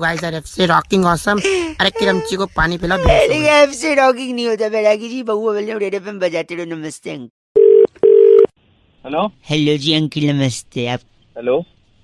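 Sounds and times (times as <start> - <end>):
telephone ringback tone: 7.6 - 8.5.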